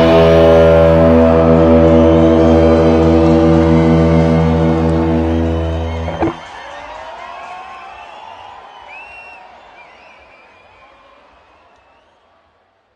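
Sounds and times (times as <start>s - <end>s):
electric guitars and bass ringing chord: 0.0s - 6.4s.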